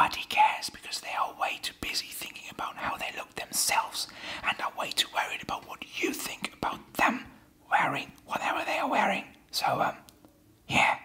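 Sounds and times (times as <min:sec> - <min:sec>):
man whispering: 0:00.0 - 0:10.1, 0:10.7 - 0:11.0.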